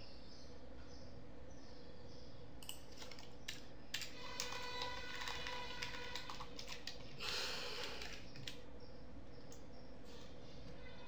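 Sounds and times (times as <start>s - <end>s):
computer keyboard keystrokes: 2.6s - 7.0s, 7.8s - 8.6s.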